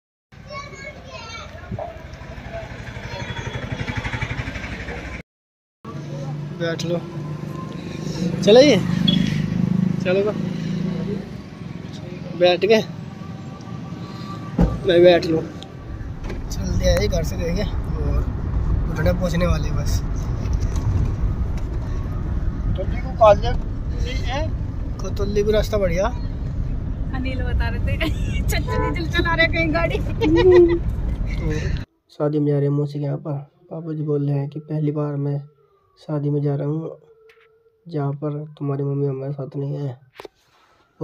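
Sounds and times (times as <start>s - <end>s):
road noise: 0.3s - 5.2s, 5.8s - 31.9s
voices: 0.4s - 5.1s, 27.1s - 31.8s
engine idling: 2.0s - 5.2s
car engine rumble: 5.9s - 31.9s.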